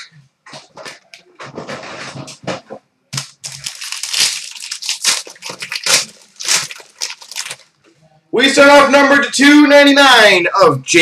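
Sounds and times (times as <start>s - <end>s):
plastic wrapper tearing: 3.2s - 7.8s.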